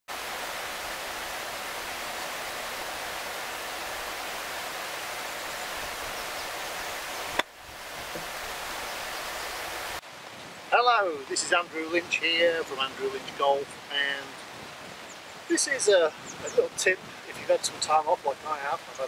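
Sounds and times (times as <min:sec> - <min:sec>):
wind buffeting microphone: 0:11.9 - 0:18.3.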